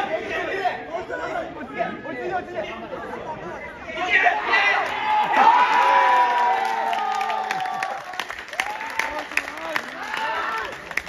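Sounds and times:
spectators shouting and cheering: 3.8 - 11.0
hand clapping: 6.6 - 11.0.

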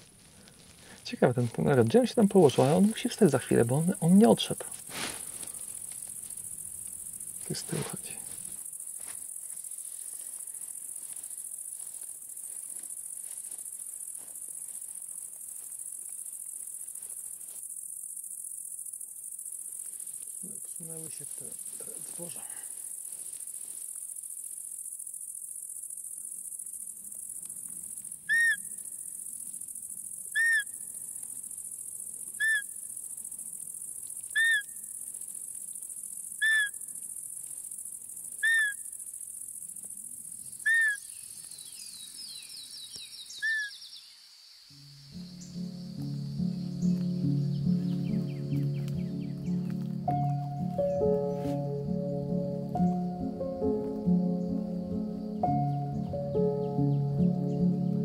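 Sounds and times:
crickets chirring: 0.0 - 58.0
background music: 44.8 - 58.0.

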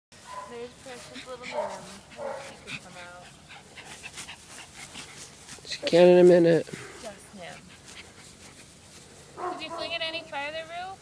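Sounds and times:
woman calling: 9.4 - 11.0.

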